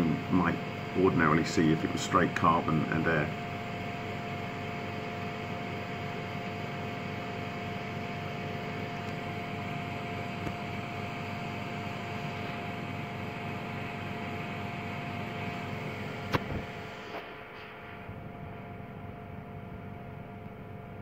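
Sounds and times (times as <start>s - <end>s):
machine hum: 0.0s - 21.0s.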